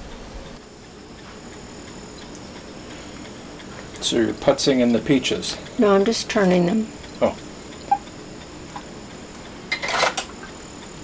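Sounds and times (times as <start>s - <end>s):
kitchen utensils clattering: 9.7s - 10.3s.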